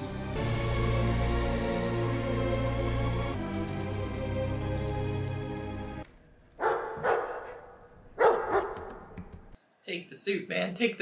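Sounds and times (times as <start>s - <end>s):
tense music over low drone: 0.0s - 6.1s
large dog barking: 6.6s - 9.1s.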